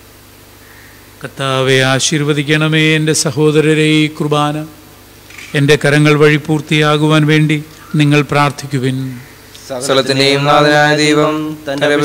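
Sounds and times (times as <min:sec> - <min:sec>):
man chanting a prayer: 0:01.2 - 0:04.8, 0:05.5 - 0:12.0.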